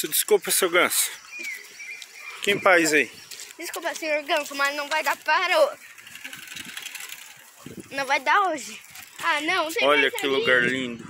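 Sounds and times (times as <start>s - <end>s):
person speaking: 2.4s - 5.8s, 7.8s - 11.0s.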